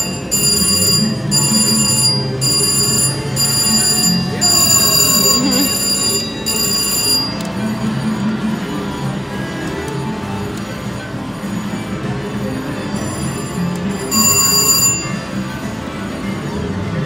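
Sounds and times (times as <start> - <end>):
slot machine electronic chime: 0.0 - 8.7, 11.4 - 15.8
casino background music: 0.0 - 17.0
chatter: 0.0 - 17.0.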